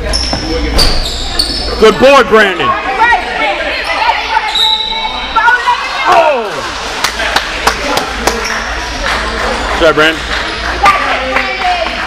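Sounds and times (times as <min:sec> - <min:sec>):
voices shouting in a hall: 0:02.6 - 0:06.9.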